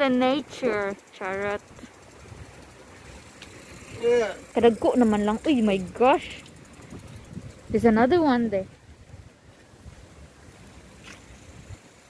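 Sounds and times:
wind rumble on microphone: 5.7s - 12.0s.

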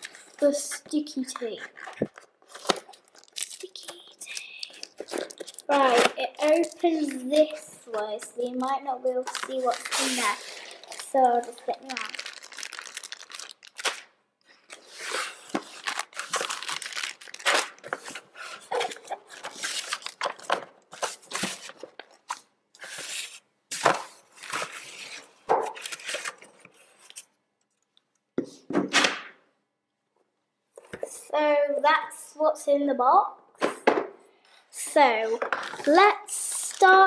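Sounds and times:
plastic bags crinkling: 1.8s - 7.6s, 8.4s - 22.4s.

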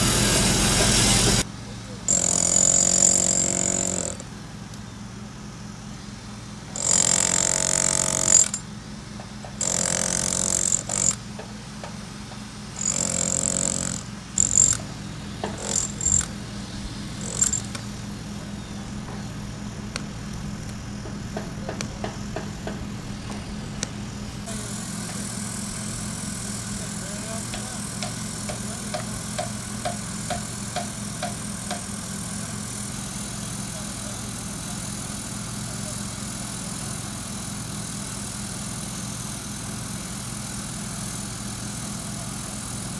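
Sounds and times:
engine hum: 0.0s - 31.8s
hammer drill boring into brick: 2.1s - 4.2s, 6.8s - 8.6s, 9.6s - 11.2s, 12.8s - 14.9s, 15.5s - 16.4s, 17.2s - 17.8s.

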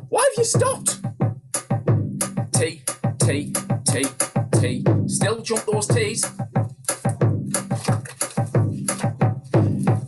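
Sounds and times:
surdo bass drum beating: 0.0s - 10.0s
sharp clicking drum strokes: 5.5s - 10.0s.

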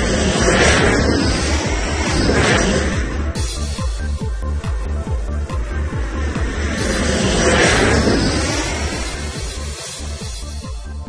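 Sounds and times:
airplane flying by: 0.0s - 10.9s
pulsing electronic beat: 0.0s - 11.0s.

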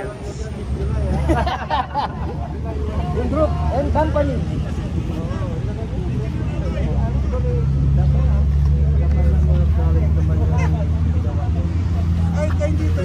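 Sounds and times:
engine droning: 0.0s - 13.0s
faint voices: 0.0s - 13.0s.

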